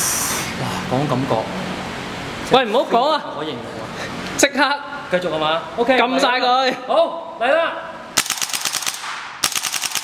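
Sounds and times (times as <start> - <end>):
airsoft rifle full-auto bursts: 8.2 - 10.0.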